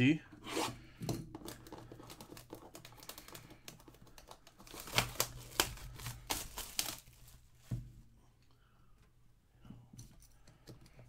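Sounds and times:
plastic shrink wrap crackling: 1.4s - 7.5s.

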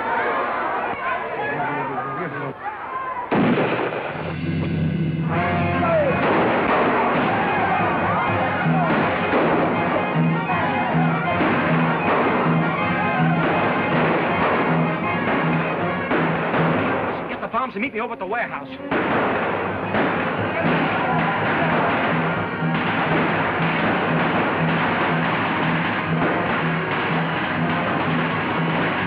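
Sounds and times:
crowd shouting: 0.0s - 3.4s, 5.2s - 29.0s
low drumbeat: 18.7s - 29.0s.

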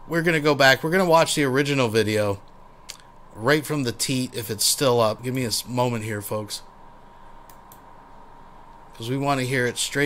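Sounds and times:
low steady hum: 0.0s - 10.0s
computer mouse clicks: 7.4s - 7.9s.

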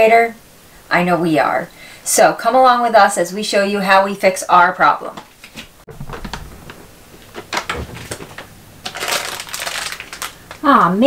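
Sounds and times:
items clinking on fridge shelves: 5.9s - 10.7s
plastic bag crinkling: 5.9s - 11.0s.

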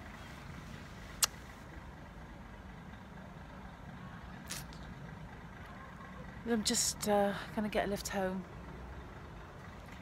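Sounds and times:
distant road traffic: 0.0s - 10.0s
short hiss: 4.4s - 4.8s.

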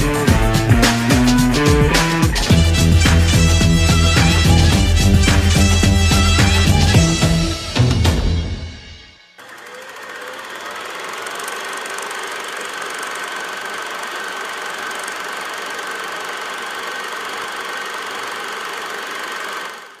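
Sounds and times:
steady machine noise: 0.0s - 8.2s, 9.4s - 20.0s.

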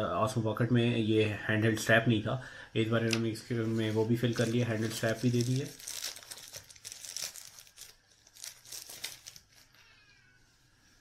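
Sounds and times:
plastic wrapper crinkling: 3.1s - 9.8s
cat meowing: 9.6s - 10.6s.

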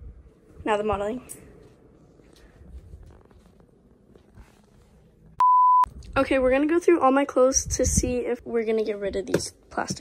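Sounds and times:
censor bleep: 5.4s - 5.9s.

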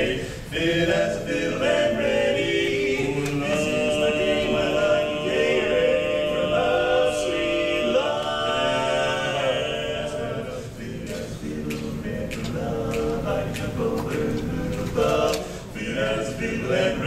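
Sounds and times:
men's barbershop quartet singing: 0.0s - 17.0s.

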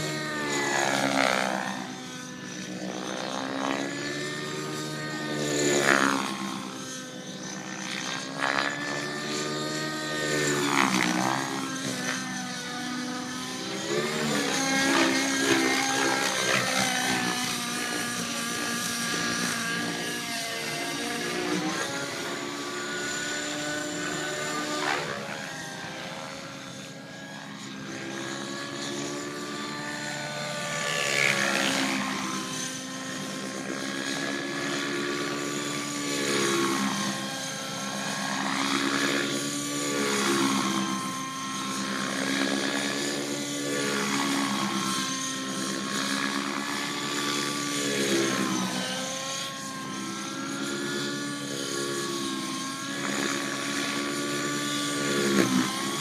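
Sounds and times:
model airplane motor and propeller: 0.0s - 56.0s.

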